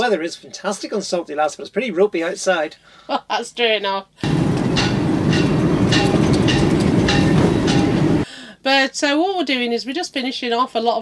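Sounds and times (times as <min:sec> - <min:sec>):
wind buffeting microphone: 0:04.2 - 0:08.2.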